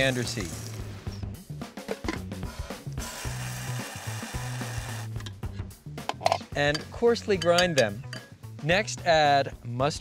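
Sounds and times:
background music with drums: 0.0s - 10.0s
electric spice grinder running: 3.0s - 5.1s.

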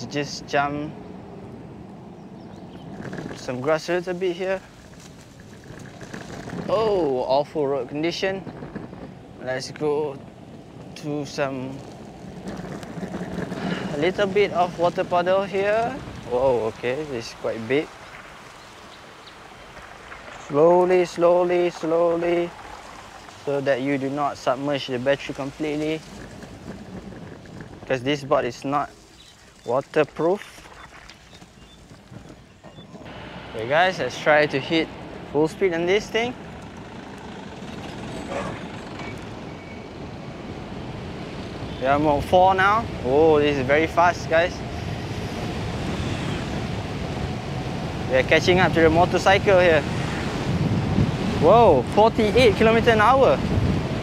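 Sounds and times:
skateboard wheels rumbling on asphalt: 0.0s - 54.0s.

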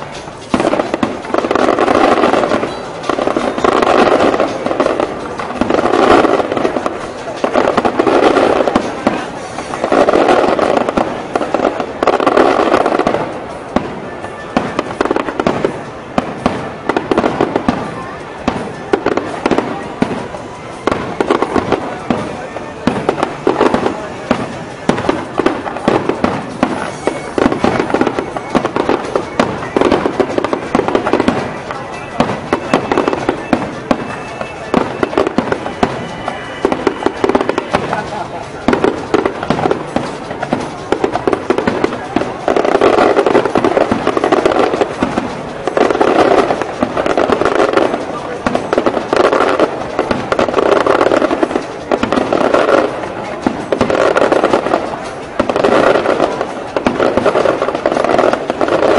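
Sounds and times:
fireworks bursts and crackling: 0.0s - 58.9s.

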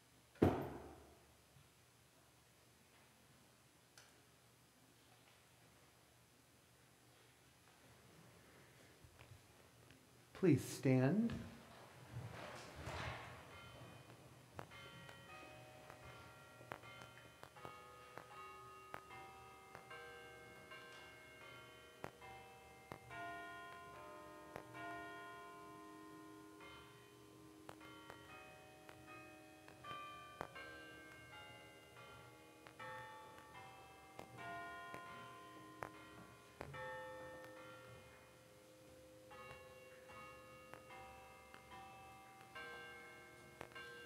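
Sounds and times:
church organ playing: 12.8s - 44.0s.

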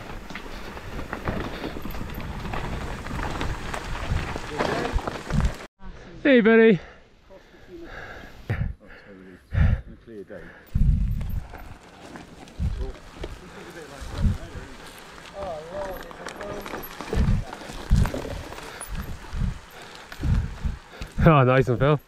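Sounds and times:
bike thumping over bumps: 0.0s - 5.7s
bike tyres rushing and rattling: 0.0s - 5.7s, 10.8s - 22.0s.

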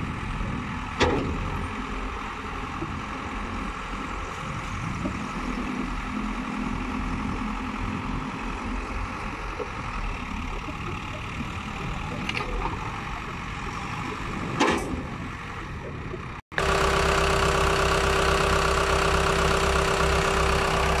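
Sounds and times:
diesel engine running: 0.0s - 21.0s.

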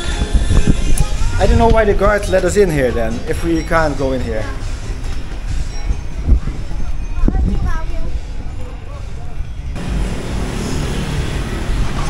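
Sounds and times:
wind rumble on microphone: 0.0s - 2.2s, 5.4s - 9.8s
faint voices: 0.0s - 9.8s
crowd noise: 0.0s - 12.0s.

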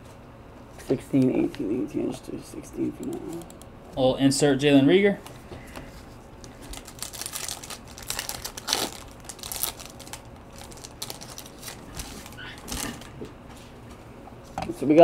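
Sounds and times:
foil wrapper crinkling: 6.4s - 13.1s.

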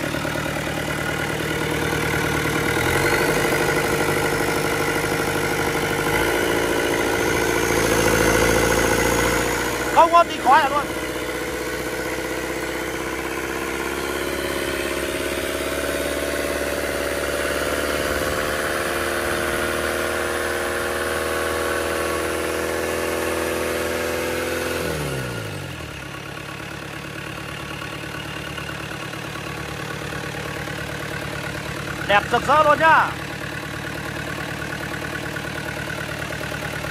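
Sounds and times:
diesel engine running: 0.0s - 36.9s.

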